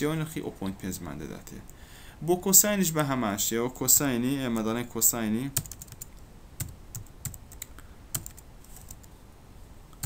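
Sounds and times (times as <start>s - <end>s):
computer keyboard typing: 5.6s - 9.1s.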